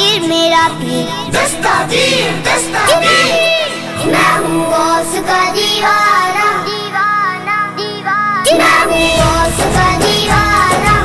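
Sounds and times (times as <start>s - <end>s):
child singing: 0.0s - 11.0s
bass-heavy drum beat: 9.1s - 11.0s.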